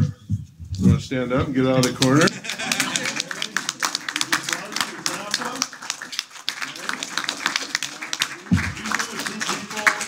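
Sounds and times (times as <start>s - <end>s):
man speaking: 0.8s - 3.6s
audience applause: 1.8s - 10.0s.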